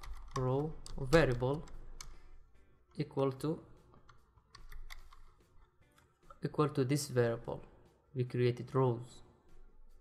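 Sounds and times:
computer keyboard typing: 0.0s - 2.2s, 4.1s - 5.4s.

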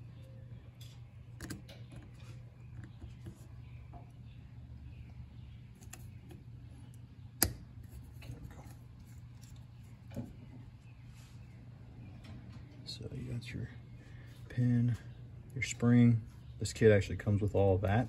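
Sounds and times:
low steady hum: 0.0s - 18.0s.

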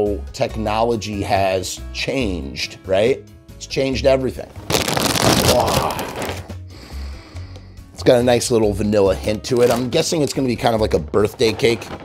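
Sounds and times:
plastic bag crinkling and tearing: 4.6s - 6.6s, 9.3s - 10.3s.

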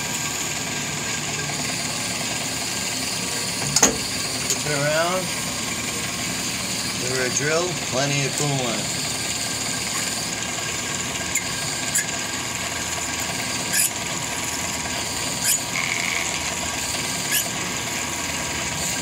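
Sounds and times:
drill cutting metal: 0.0s - 19.0s
lathe running: 0.0s - 19.0s
drill squeaks: 1.6s - 7.9s, 8.8s - 19.0s
coolant splashing: 8.8s - 19.0s.

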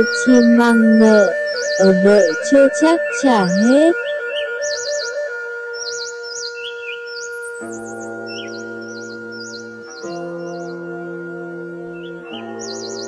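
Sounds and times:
birds chirping in trills: 0.0s - 13.0s
soft music of long held notes: 0.0s - 13.0s.

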